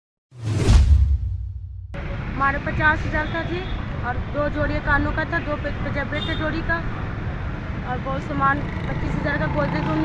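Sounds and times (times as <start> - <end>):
street noise: 1.5 - 10.0
woman speaking: 7.9 - 10.0.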